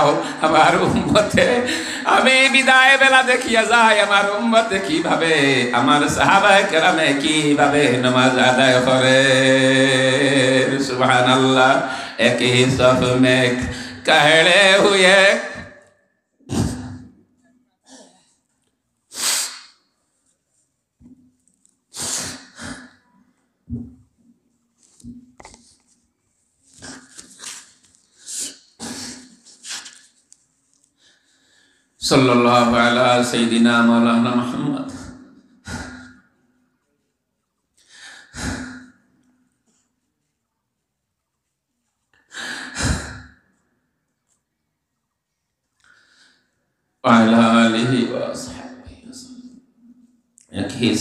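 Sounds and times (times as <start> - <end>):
man breathing into microphone: 1.7 - 2.1.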